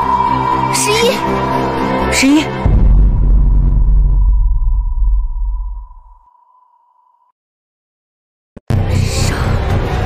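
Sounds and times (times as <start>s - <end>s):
deep cinematic boom: 2.5s - 6.3s
high ringing tone: 5.0s - 7.4s.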